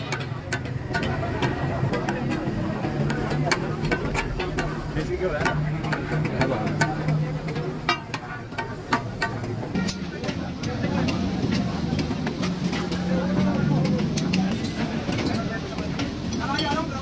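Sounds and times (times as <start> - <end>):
metal utensils clinking on pans: 0.0 - 17.0
voices: 0.0 - 17.0.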